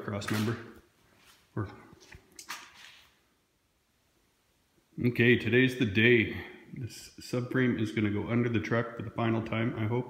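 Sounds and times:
man speaking: 0:00.0 - 0:00.8, 0:01.5 - 0:02.0, 0:05.0 - 0:10.0
brief rustle: 0:02.0 - 0:03.2.

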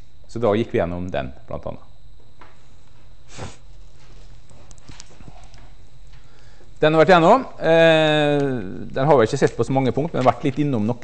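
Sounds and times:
low room hum: 0:00.0 - 0:11.0
footsteps on hard floor: 0:03.8 - 0:06.3.

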